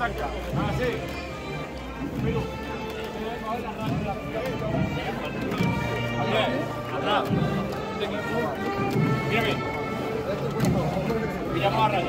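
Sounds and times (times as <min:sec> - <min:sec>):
band music: 0:00.0 - 0:12.0
men talking: 0:00.0 - 0:12.0.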